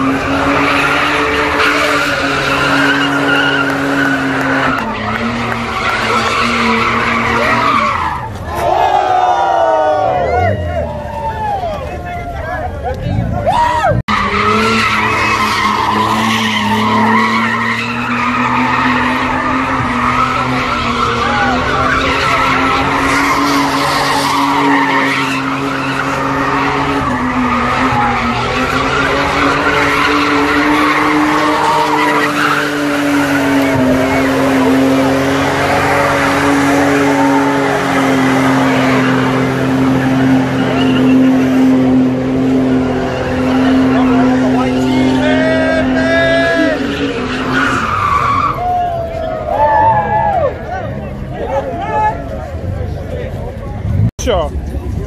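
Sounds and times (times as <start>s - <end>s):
car engine revving high: 0.0s - 11.0s, 13.1s - 49.5s
crowd shouting: 0.0s - 41.8s, 42.7s - 52.6s
tyres squealing on asphalt: 0.0s - 55.0s.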